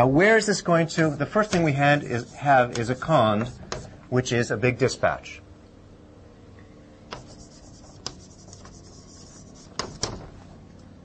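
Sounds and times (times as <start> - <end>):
rubbing strokes on a board: 1.0 - 4.0, 7.1 - 10.2.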